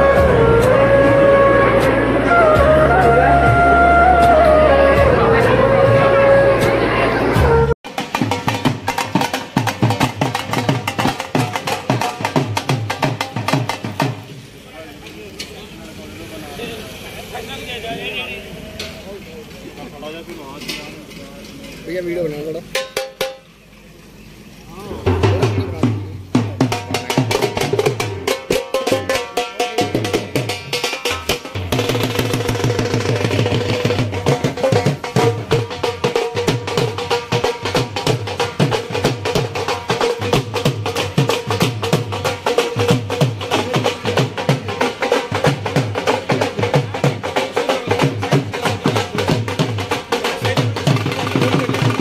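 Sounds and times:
people talking: 0.0 - 7.8, 14.5 - 22.8, 23.8 - 30.8, 42.6 - 52.0
live band music: 0.0 - 14.4, 24.8 - 52.0
barrel drums beaten fast: 7.8 - 14.4, 24.9 - 52.0.

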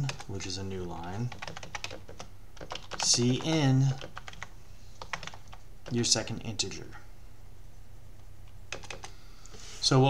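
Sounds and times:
person speaking: 0.0 - 1.6, 2.9 - 4.2, 5.8 - 7.1, 9.8 - 10.0
keyboard typing clicks: 1.3 - 6.0, 8.7 - 9.1.

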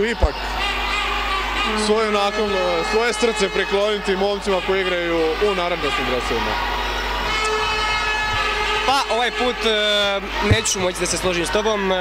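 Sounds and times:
man giving sports commentary: 0.0 - 0.4, 1.6 - 6.6, 8.7 - 12.0.

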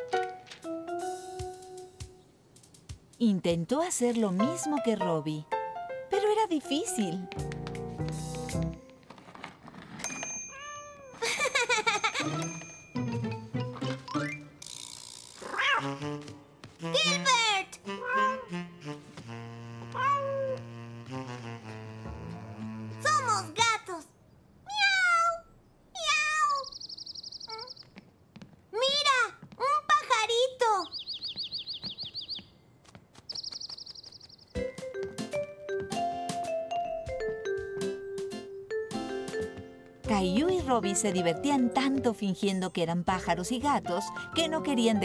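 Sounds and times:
cat meowing: 15.4 - 16.0, 17.9 - 18.5, 19.9 - 20.6
small bird twittering: 26.4 - 28.0, 30.8 - 32.6, 33.3 - 34.6.

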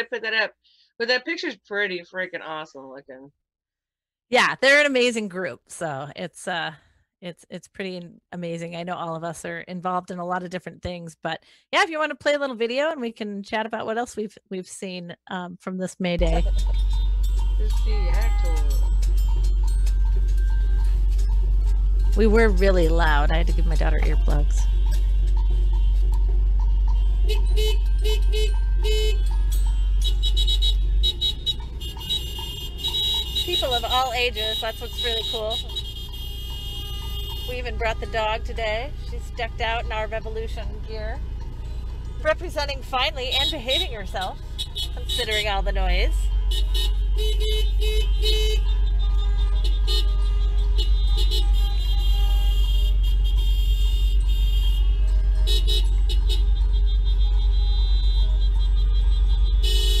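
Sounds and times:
traffic rumble: 16.1 - 60.0
car horns honking: 16.2 - 60.0.

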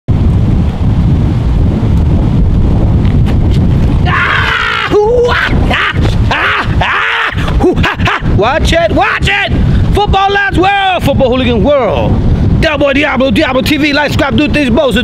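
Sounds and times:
wind buffeting microphone: 0.1 - 15.0
man yelling: 4.0 - 12.0.

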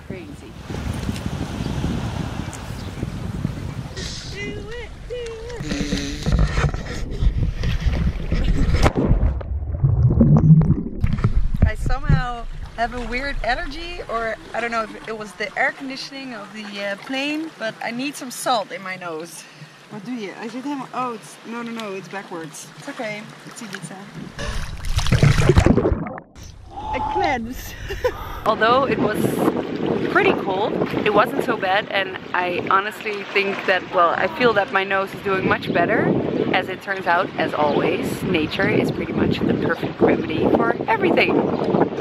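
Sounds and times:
wind noise on microphone: 0.0 - 14.7, 24.1 - 33.0, 33.8 - 42.0
low rumbling water: 0.0 - 42.0.

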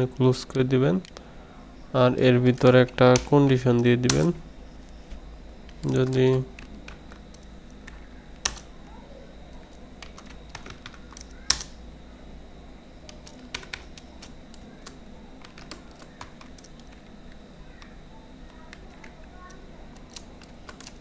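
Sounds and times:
computer keyboard typing: 2.3 - 4.4, 5.6 - 8.7, 9.5 - 11.8, 13.0 - 21.0.

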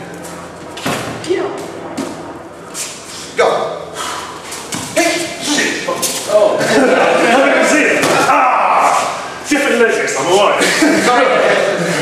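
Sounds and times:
people shouting: 6.9 - 9.3.

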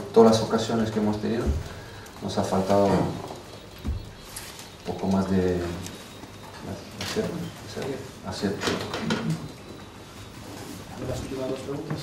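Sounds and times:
man talking: 0.0 - 3.5, 4.8 - 6.0, 6.6 - 9.6, 10.9 - 12.0.

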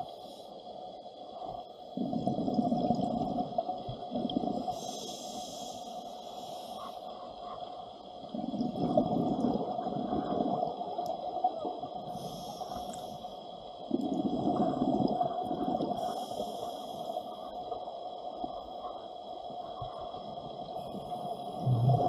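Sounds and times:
exhaled bubbles underwater: 1.5 - 5.4, 8.2 - 13.0, 13.9 - 22.0
regulator inhalation hiss: 4.7 - 6.8, 12.1 - 13.4, 16.0 - 17.4.

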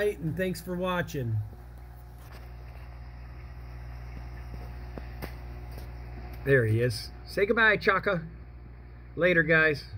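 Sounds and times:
aquarium equipment humming: 0.0 - 9.9.

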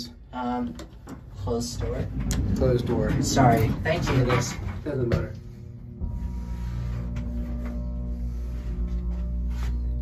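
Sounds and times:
elevator pump motor humming: 0.0 - 10.0.

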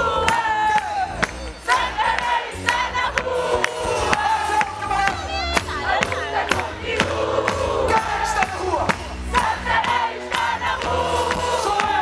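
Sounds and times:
men singing together: 0.0 - 5.2, 5.9 - 12.0
crowd singing along: 0.0 - 12.0
live band music: 0.0 - 12.0
steady drum beat: 0.0 - 12.0.

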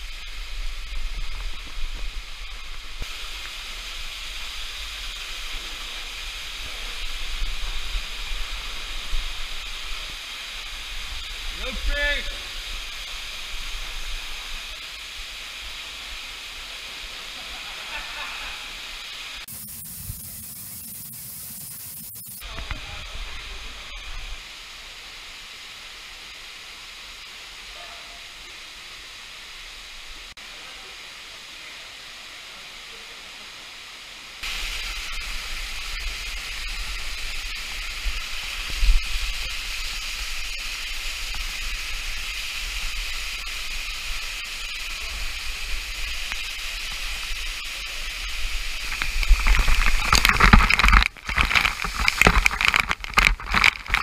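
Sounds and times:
waterfall rushing into pool: 0.0 - 54.0.

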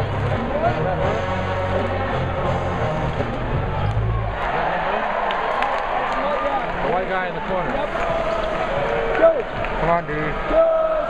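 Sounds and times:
music with low bass notes: 0.0 - 4.3
arena crowd noise: 0.0 - 11.0.

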